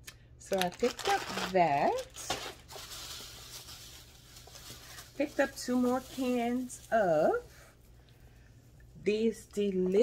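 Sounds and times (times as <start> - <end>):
plastic bag rustling: 0.5 - 7.6.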